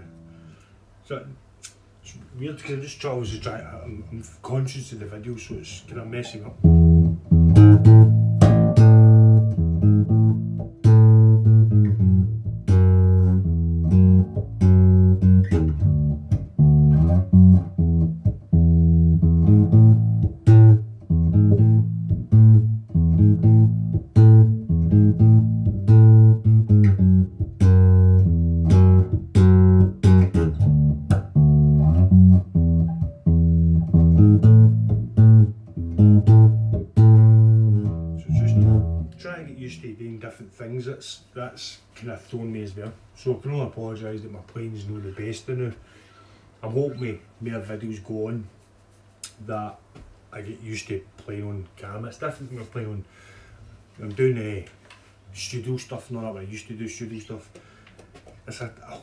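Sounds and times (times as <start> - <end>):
electric bass plucked notes: 6.3 - 39.8.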